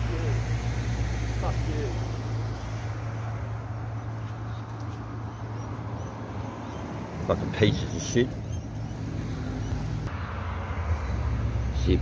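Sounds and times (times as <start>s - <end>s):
light road noise: 0.0s - 12.0s
vehicle engine and tyres: 0.0s - 12.0s.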